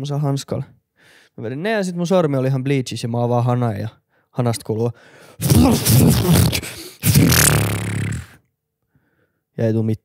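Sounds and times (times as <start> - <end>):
man imitating tap sputtering: 5.4 - 8.4.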